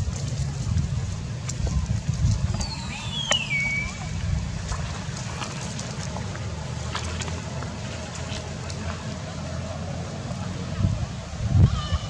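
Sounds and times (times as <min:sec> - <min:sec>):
wind buffeting microphone: 0:00.0 - 0:09.5, 0:10.4 - 0:12.0.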